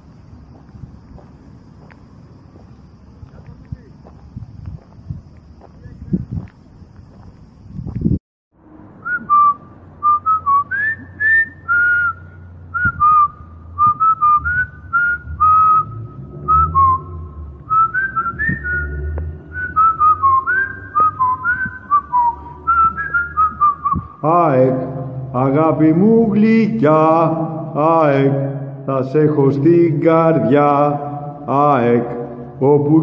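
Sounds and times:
low rumble: 0:00.0 - 0:33.0
person whistling a tune: 0:09.0 - 0:24.2.

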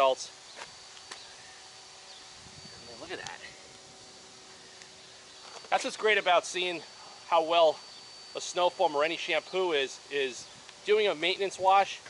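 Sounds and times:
faint high-pitched tone: 0:00.0 - 0:12.0
outdoor background hiss: 0:00.0 - 0:12.0.

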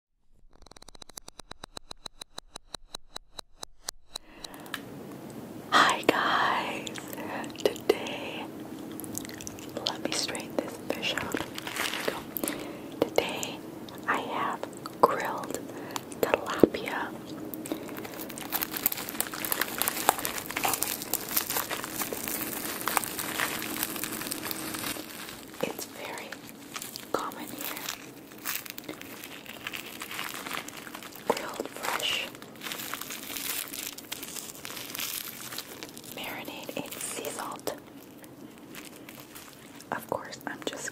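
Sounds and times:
close whispering: 0:05.7 - 0:08.5, 0:09.6 - 0:18.2, 0:19.2 - 0:23.8, 0:25.5 - 0:28.1, 0:31.1 - 0:32.4, 0:36.2 - 0:37.9, 0:39.9 - 0:40.9
picking at grilled fish skin: 0:08.8 - 0:39.9
fingers handling lettuce leaves: 0:08.9 - 0:13.4, 0:15.4 - 0:39.9.

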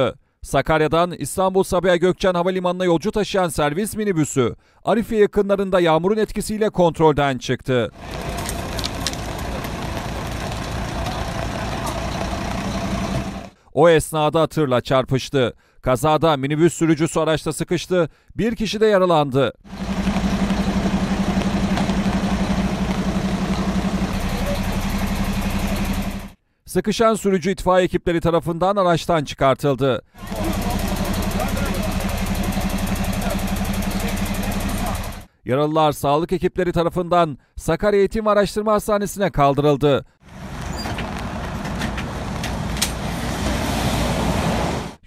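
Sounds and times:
engine idling: 0:08.0 - 0:13.6, 0:19.7 - 0:26.4, 0:30.2 - 0:35.3.

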